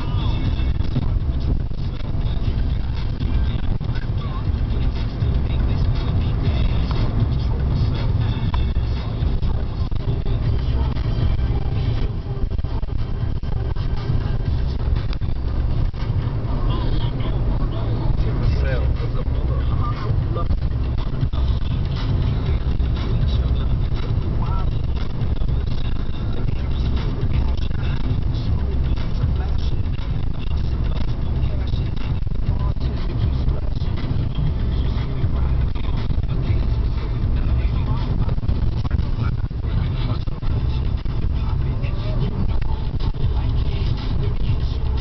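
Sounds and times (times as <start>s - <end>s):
car road and engine rumble: 0.0s - 45.0s.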